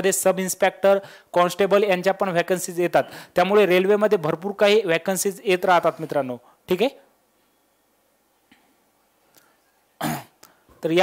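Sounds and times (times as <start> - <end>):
speech: 0.0 - 7.0, 10.8 - 11.0
man coughing: 10.0 - 10.4.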